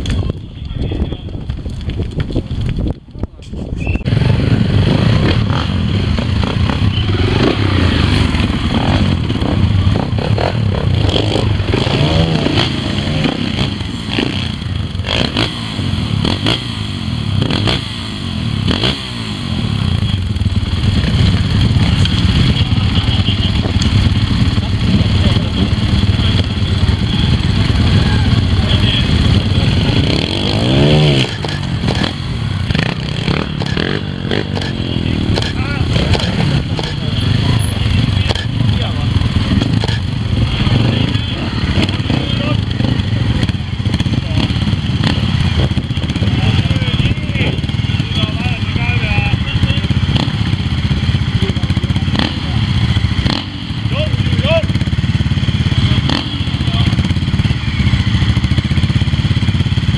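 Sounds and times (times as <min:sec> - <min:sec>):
onlookers' voices: 0:00.0 - 0:01.6, 0:19.6 - 0:59.9
motorcycle engine throttle blips: 0:18.4 - 0:59.9.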